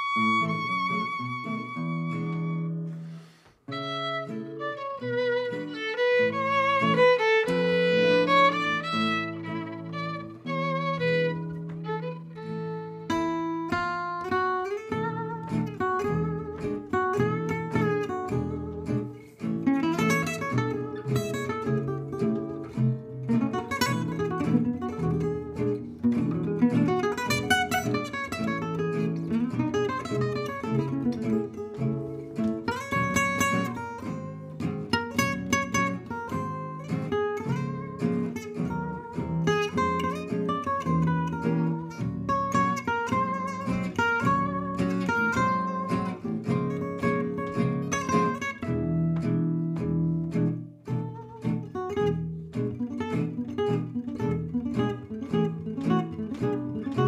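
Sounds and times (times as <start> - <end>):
violin melody with vibrato: 0.0 - 16.7
lead guitar solo: 0.0 - 57.0
strummed rhythm guitar: 0.0 - 57.0.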